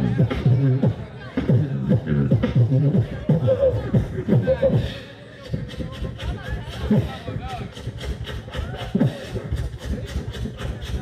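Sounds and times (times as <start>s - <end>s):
beatboxing mouth clicks: 0.0s - 11.0s.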